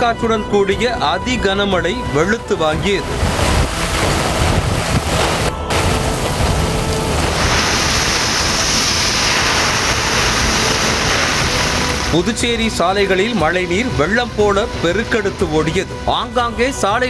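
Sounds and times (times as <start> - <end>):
heavy rain pouring: 2.5 - 16.5
gusty wind buffeting microphone: 2.6 - 12.4.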